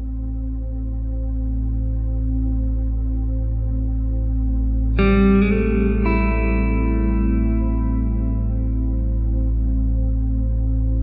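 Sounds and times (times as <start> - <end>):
ambient music: 0.0 - 11.0
low drone: 0.0 - 11.0
plucked notes ringing: 5.0 - 9.2.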